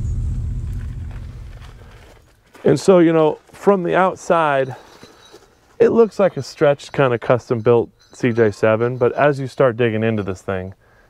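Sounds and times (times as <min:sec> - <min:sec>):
engine and exhaust rumble: 0:00.0 - 0:02.4.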